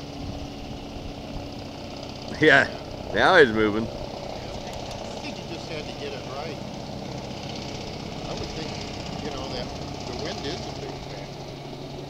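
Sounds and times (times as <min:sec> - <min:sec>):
hovercraft engine drone: 0:00.0 - 0:12.0
faint voices: 0:02.3 - 0:06.6, 0:07.2 - 0:11.4.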